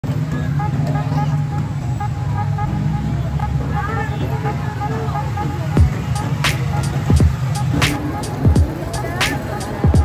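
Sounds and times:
low rumble of vehicle engines: 0:00.0 - 0:10.0
indistinct voices: 0:02.6 - 0:10.0.

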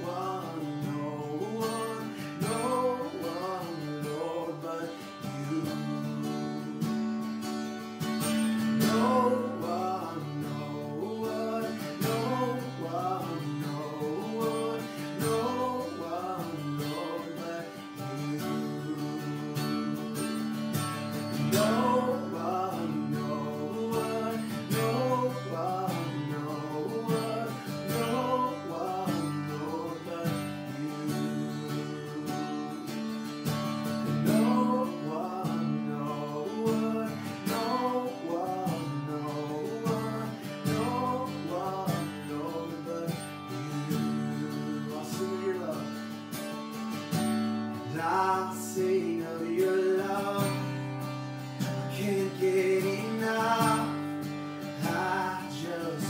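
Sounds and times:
acoustic guitar strumming: 0:00.0 - 0:56.0
man singing: 0:00.0 - 0:56.0.

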